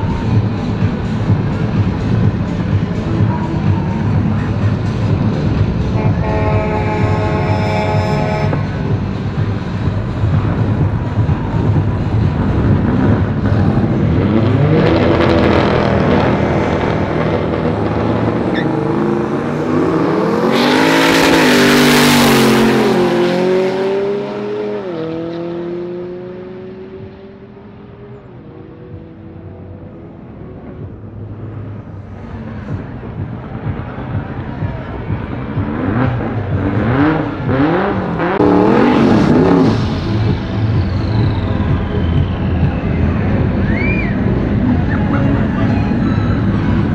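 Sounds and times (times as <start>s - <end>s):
racing car engines accelerating: 0.0s - 46.9s
car revving during burnout: 10.2s - 27.1s, 35.0s - 46.9s.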